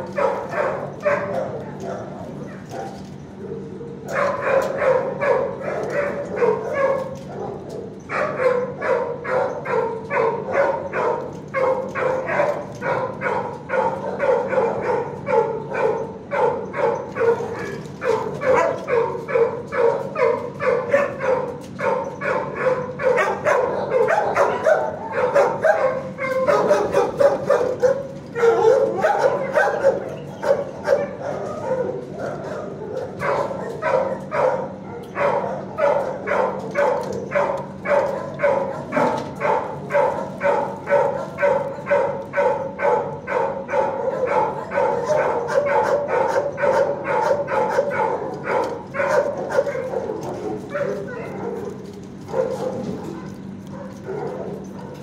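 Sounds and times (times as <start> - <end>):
dogs barking: 0.0 - 55.0.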